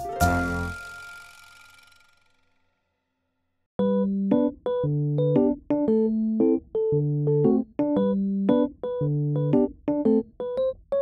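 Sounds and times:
piano chord ringing out: 0.0s - 1.4s.

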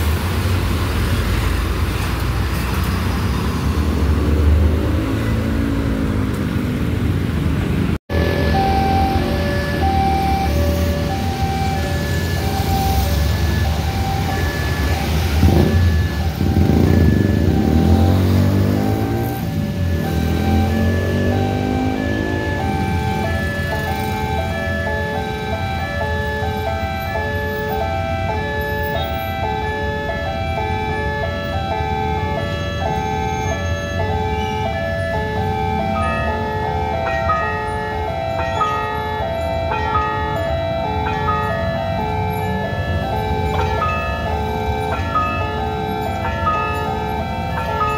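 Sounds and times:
motorbikes passing: 0.0s - 47.9s
level-crossing warning bell chimes: 8.1s - 47.9s.

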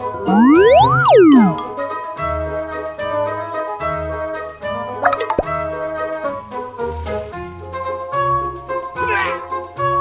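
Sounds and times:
light bouncy background music: 0.0s - 10.0s
cartoon plop sound effect: 0.2s - 1.8s, 5.0s - 5.6s.

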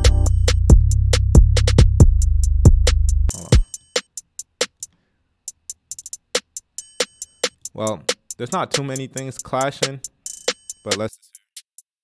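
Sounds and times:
drum hit: 0.0s - 3.7s
hi-hat ticks: 0.0s - 11.8s.

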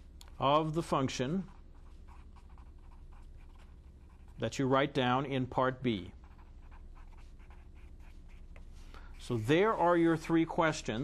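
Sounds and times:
steady low hum: 0.0s - 11.0s
marker scratching on paper: 1.4s - 4.4s, 6.1s - 10.4s.

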